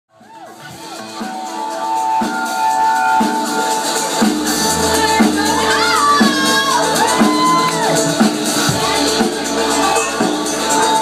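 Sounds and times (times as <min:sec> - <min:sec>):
live house music: 0:00.1 - 0:11.0.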